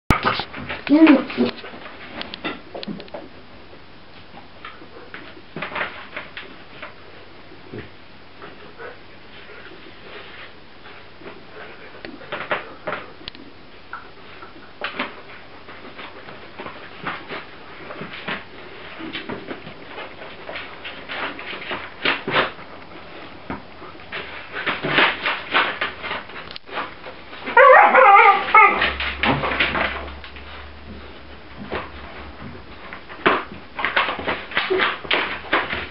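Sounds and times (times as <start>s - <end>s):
puppies rustling in plastic basket: 0.1s - 35.9s
puppy whining: 27.4s - 29.0s.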